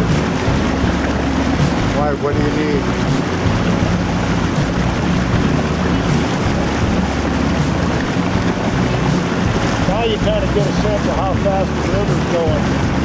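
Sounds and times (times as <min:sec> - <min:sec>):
boat motor running: 0:00.0 - 0:13.0
water rushing along hull: 0:00.0 - 0:13.0
wind on microphone: 0:00.0 - 0:13.0.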